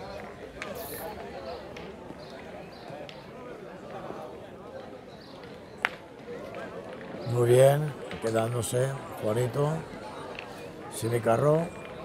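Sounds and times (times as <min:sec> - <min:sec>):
distant people chattering: 0:00.0 - 0:12.0.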